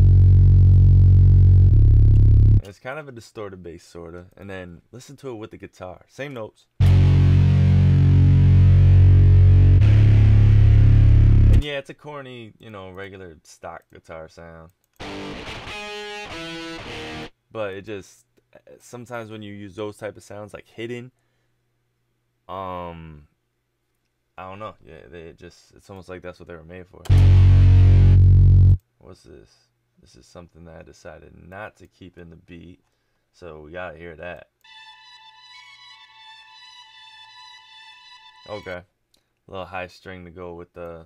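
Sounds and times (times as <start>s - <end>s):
distorted synth bass and guitar: 0.0s - 2.6s, 6.8s - 11.6s, 15.0s - 17.3s, 27.1s - 28.8s.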